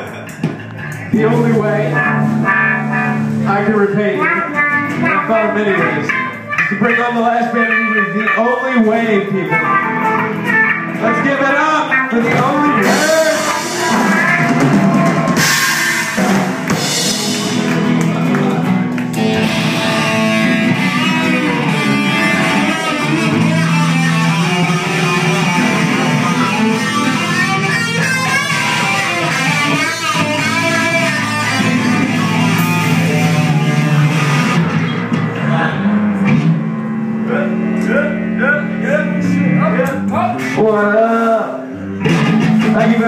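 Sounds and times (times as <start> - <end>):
low bass line: 0.0 - 11.4, 12.0 - 43.0
drums: 0.0 - 43.0
loud electric guitars: 0.0 - 43.0.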